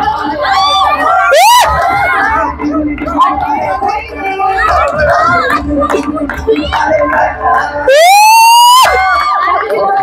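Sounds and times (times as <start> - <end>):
crowd chatter: 0.0 - 10.0
crowd clapping: 0.1 - 10.0.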